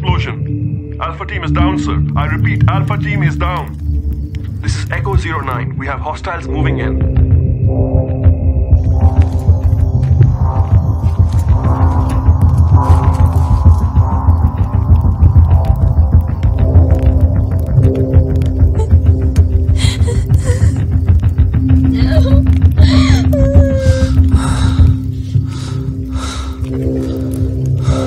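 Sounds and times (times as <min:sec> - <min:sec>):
action film score: 0:00.0 - 0:28.0.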